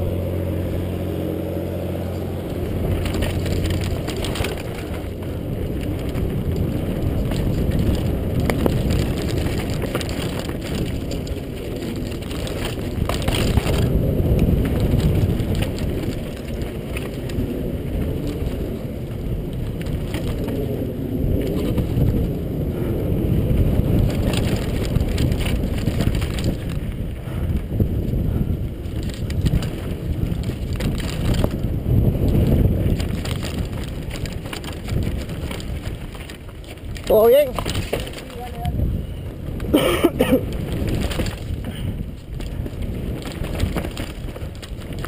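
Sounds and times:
bike rattling: 0:00.0 - 0:45.0
tyres crunching over gravel: 0:00.0 - 0:45.0
wind rumble on microphone: 0:00.0 - 0:45.0.

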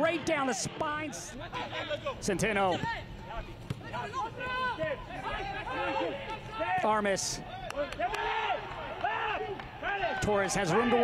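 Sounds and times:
open-air stadium ambience: 0:00.0 - 0:11.0
voices shouting: 0:02.7 - 0:11.0.

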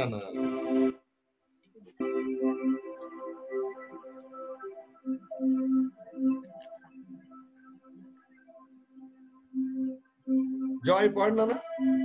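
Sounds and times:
person speaking: 0:00.0 - 0:00.6
steady musical tone: 0:02.0 - 0:12.0.

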